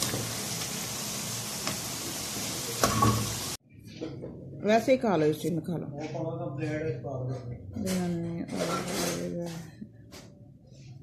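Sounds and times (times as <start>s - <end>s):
food sizzling in hot oil: 0.0s - 3.6s.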